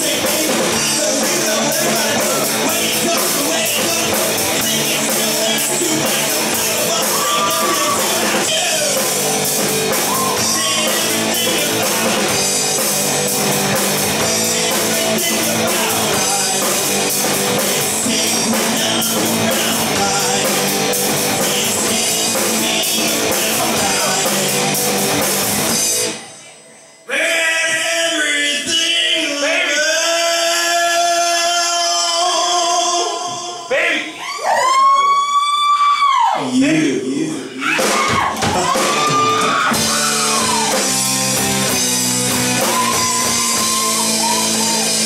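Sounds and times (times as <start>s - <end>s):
man singing long high note: 0.0s - 9.2s, 10.1s - 12.3s
drum kit beat: 0.0s - 26.3s, 37.6s - 45.0s
electric guitars: 0.0s - 27.0s, 37.6s - 45.0s.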